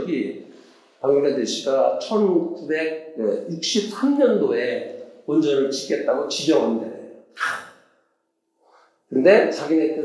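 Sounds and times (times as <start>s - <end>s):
man speaking: 0.0s - 0.4s, 1.0s - 7.6s, 9.1s - 10.0s
man breathing: 8.6s - 9.0s.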